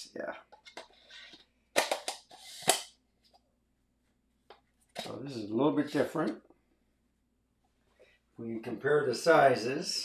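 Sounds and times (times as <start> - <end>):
camera lens case clacking: 1.8 - 2.8.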